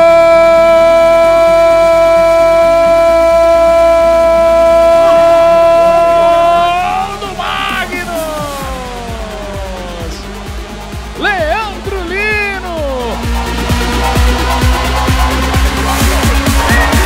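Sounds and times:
commentator shouting goal: 0:00.0 - 0:10.3, 0:11.1 - 0:13.3, 0:16.6 - 0:17.0
background music: 0:00.0 - 0:17.0.

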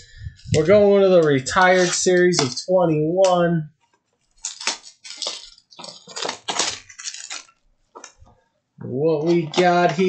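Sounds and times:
plastic shrink-wrap crinkling: 0:04.2 - 0:08.4.

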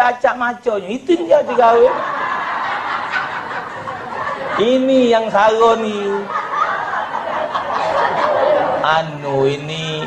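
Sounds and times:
audience laughing: 0:01.1 - 0:10.0.

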